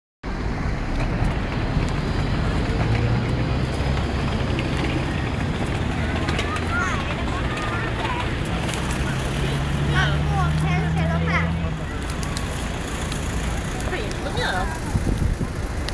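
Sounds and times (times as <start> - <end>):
road traffic: 0.2 - 15.9
vehicle engine humming: 0.3 - 15.9
people talking and calling: 1.8 - 15.9.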